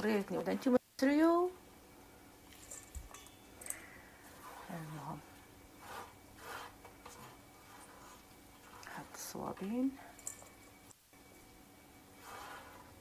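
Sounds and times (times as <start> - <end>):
faint rustling and handling: 2.1 - 13.0.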